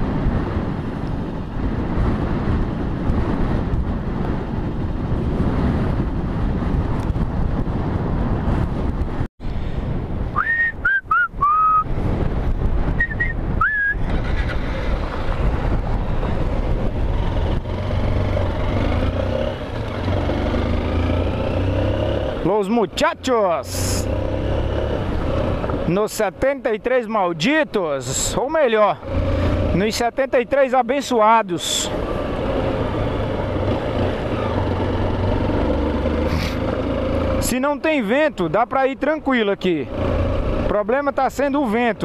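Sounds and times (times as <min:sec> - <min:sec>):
wind buffeting microphone: 0:00.0 - 0:31.0
short whistling tones: 0:10.4 - 0:11.9, 0:13.0 - 0:14.1
motorcycle engine: 0:13.2 - 0:26.2, 0:28.1 - 0:38.5, 0:39.6 - 0:42.0.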